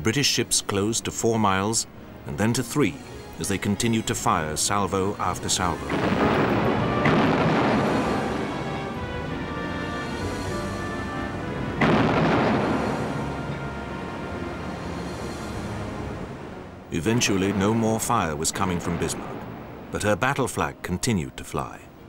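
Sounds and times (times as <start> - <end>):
background music with sustained tones: 0.0 - 22.0
naval gunfire booming: 5.9 - 14.6, 17.2 - 20.0.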